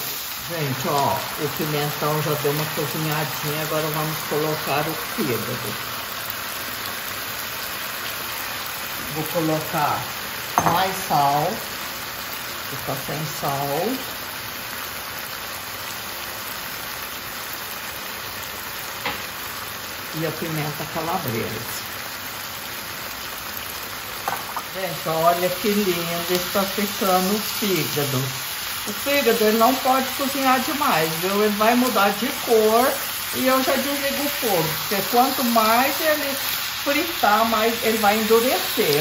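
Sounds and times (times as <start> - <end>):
food sizzling in frying pan: 0.0 - 39.0.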